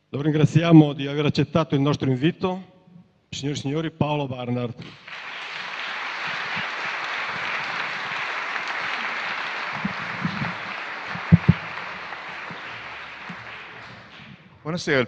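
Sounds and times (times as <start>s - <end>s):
audience applauding: 4.8s - 14.4s.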